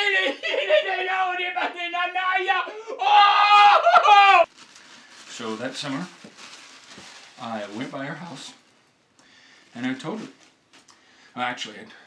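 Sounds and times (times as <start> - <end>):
man's high-pitched vocal cry: 0.0 - 4.5.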